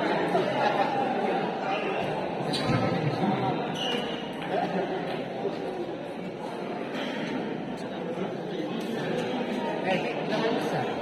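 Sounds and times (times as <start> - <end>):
spectators chattering: 0.0 - 11.0.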